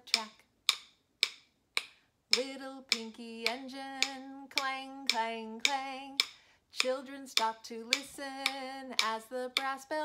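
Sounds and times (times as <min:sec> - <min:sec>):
person singing: 0:00.0 - 0:00.4, 0:02.3 - 0:10.0
stick tapping beat: 0:00.0 - 0:10.0.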